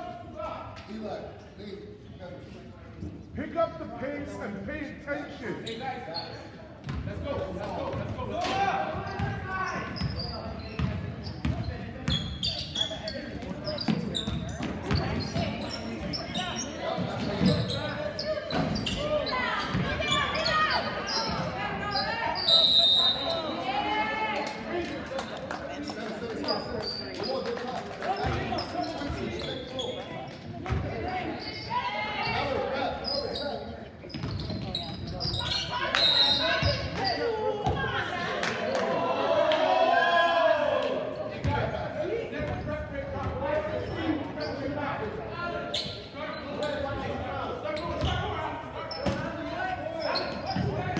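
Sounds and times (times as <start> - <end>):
players and spectators voices: 0.0 - 50.9.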